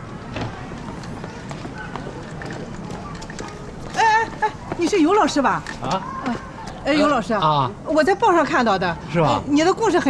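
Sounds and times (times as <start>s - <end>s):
footsteps on pavement: 0.0s - 6.5s
faint outdoor ambience: 0.0s - 10.0s.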